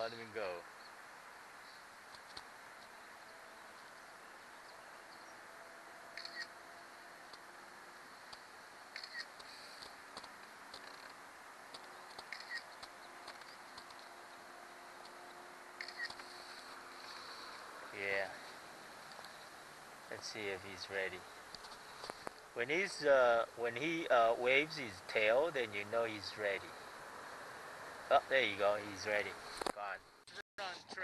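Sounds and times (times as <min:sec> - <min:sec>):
phone camera shutter clicks: 0:06.2 - 0:06.5, 0:15.8 - 0:16.2.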